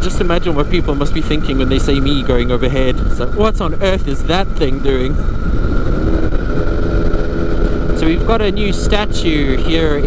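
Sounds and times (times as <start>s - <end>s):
aircraft engine and propeller: 0.0s - 10.0s
wind rumble on microphone: 0.0s - 10.0s.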